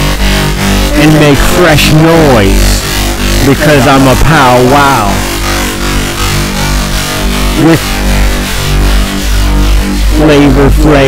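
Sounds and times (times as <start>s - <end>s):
deep bass drone: 0.0s - 11.0s
synthesizer sustained chord: 0.0s - 11.0s.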